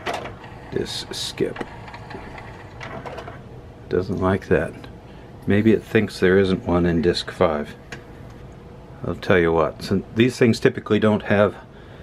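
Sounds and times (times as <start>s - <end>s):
disc changer motor and gears whirring: 0.0s - 3.5s.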